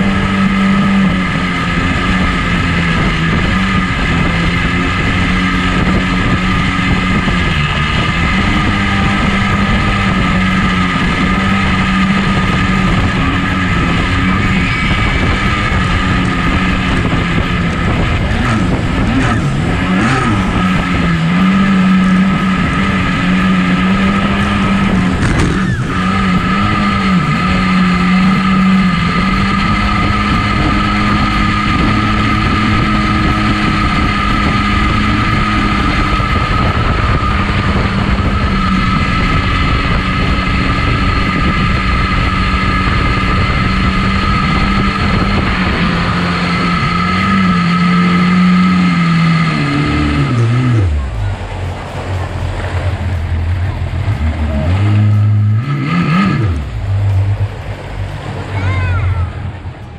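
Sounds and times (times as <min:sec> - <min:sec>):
jet boat engine: 0:00.0 - 0:59.9
rushing water and spray: 0:00.0 - 0:59.9.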